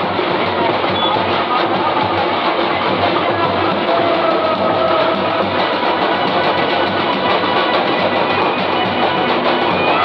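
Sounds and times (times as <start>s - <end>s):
loud instrumental music: 0.0s - 10.0s.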